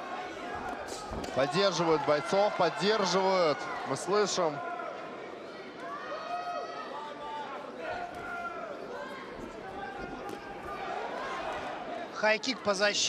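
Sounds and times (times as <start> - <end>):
crowd shouting encouragement: 0.0 - 13.0.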